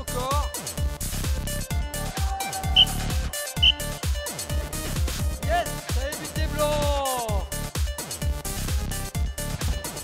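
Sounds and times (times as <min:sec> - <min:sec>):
music with fast beat: 0:02.7 - 0:06.1.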